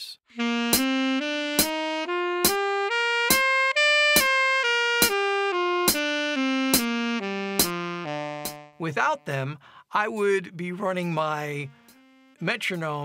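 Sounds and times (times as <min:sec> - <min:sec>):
alto saxophone playing a scale: 0:00.3 - 0:08.8, 0:11.7 - 0:12.4
metronome clicking: 0:01.6 - 0:01.8, 0:02.4 - 0:02.7, 0:03.3 - 0:04.4, 0:05.0 - 0:06.1, 0:07.6 - 0:08.8.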